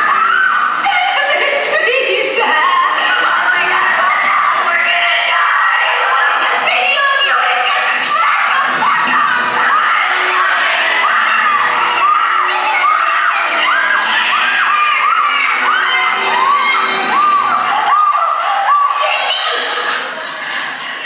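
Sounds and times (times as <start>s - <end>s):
crowd cheering: 0.0s - 21.0s
high-pitched screams: 0.0s - 21.0s
music: 0.0s - 21.0s.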